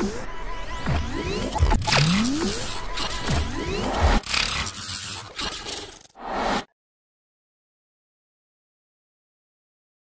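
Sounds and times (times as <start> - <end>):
noisy electronic sweeps: 0.0 - 4.6.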